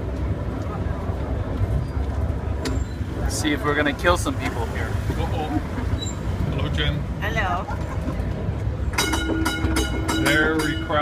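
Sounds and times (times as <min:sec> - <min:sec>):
tram rumbling: 0:00.0 - 0:11.0
tram warning bell ringing: 0:08.9 - 0:11.0.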